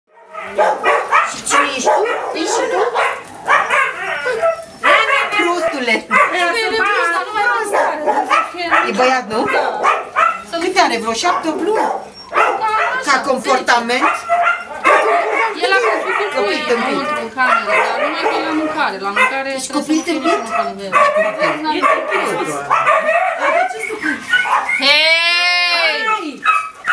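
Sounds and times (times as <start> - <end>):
dogs barking and yipping: 0.1 - 26.9
dogs whining: 0.2 - 26.9.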